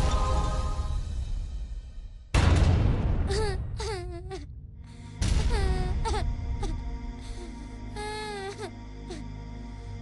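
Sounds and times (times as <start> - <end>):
girl crying: 3.2 - 9.3
soft background music: 3.3 - 10.0.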